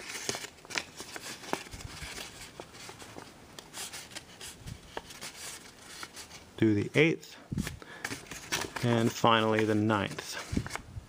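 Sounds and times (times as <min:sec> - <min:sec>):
paper rustling: 0:00.0 - 0:06.5, 0:07.6 - 0:10.8.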